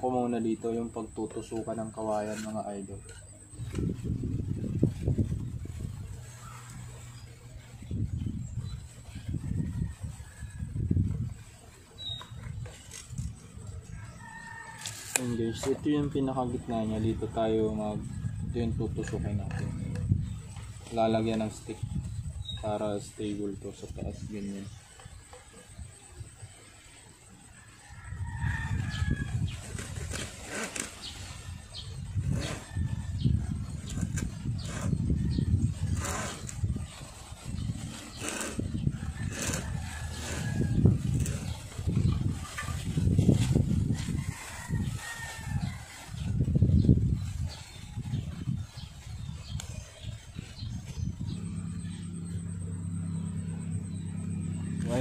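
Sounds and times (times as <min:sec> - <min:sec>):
tool scraping bamboo: 0:00.8 - 0:04.1, 0:14.6 - 0:15.8, 0:29.6 - 0:31.6, 0:32.2 - 0:32.8, 0:33.7 - 0:46.0.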